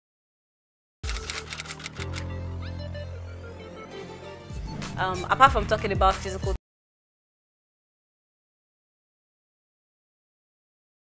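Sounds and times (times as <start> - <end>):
typewriter key clicks: 1.1 - 2.2.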